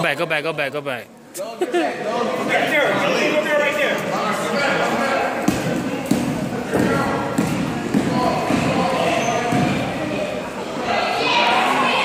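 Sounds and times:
basketball bouncing on gym floor: 0:05.4 - 0:09.9.

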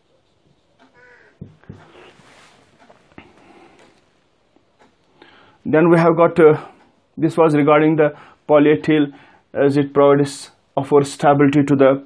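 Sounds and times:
marker writing on whiteboard: 0:00.0 - 0:02.9.

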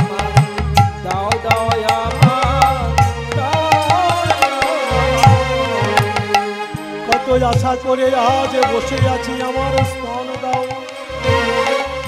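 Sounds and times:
hand drums playing: 0:00.0 - 0:12.0.

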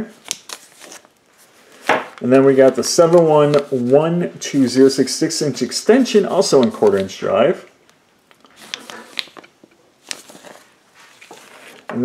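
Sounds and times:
plastic bags crinkling: 0:08.5 - 0:11.9.

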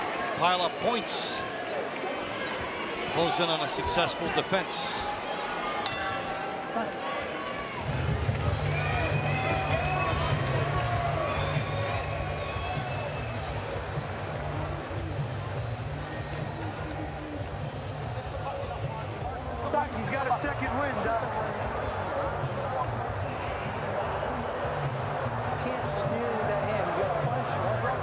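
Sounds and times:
arena crowd shouting: 0:00.0 - 0:13.8.

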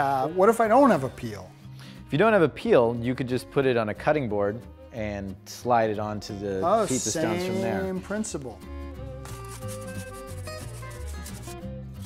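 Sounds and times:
background music with bass line: 0:06.3 - 0:12.0.

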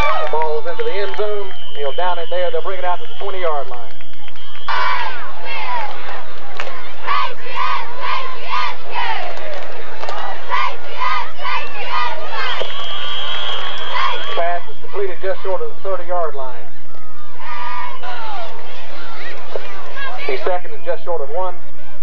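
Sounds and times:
crowd shouting and cheering: 0:00.0 - 0:22.0.

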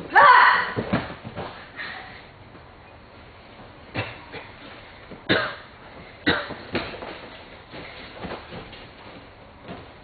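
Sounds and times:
martial artists shouting: 0:00.1 - 0:00.8.

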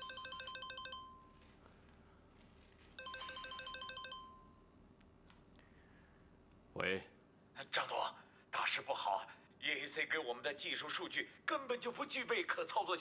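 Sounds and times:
mobile phone ringing: 0:00.0 - 0:01.6, 0:02.9 - 0:04.7.

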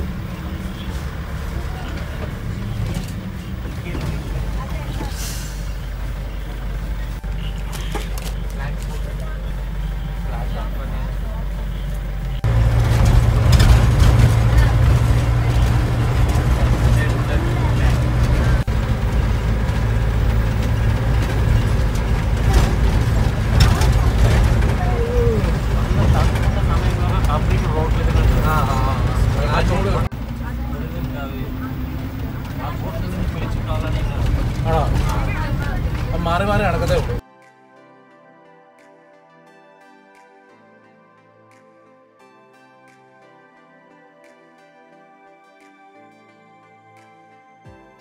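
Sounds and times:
vehicle engine rumbling: 0:00.0 - 0:37.2.

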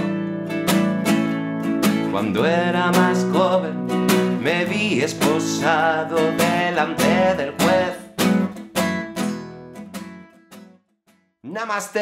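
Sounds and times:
acoustic guitar strumming: 0:00.0 - 0:11.2.

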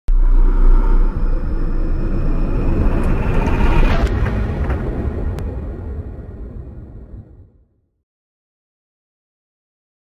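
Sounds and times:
rising whoosh: 0:00.1 - 0:07.7
deep cinematic rumble: 0:00.1 - 0:08.0.

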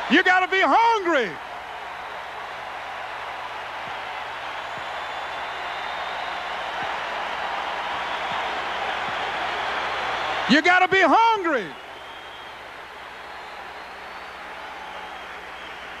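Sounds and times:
large crowd applauding: 0:00.0 - 0:16.0.

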